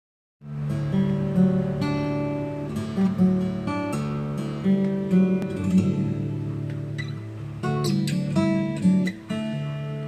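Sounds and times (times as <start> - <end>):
fingerpicked acoustic guitar: 0.4 - 10.0.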